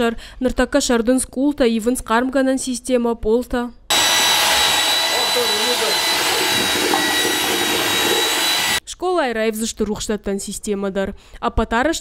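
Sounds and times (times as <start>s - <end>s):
electric drill mixing in a bucket: 3.9s - 8.8s.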